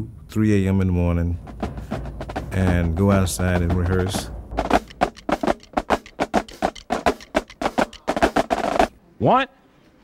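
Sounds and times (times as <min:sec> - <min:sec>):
snare drums playing cadence: 0:01.4 - 0:09.0.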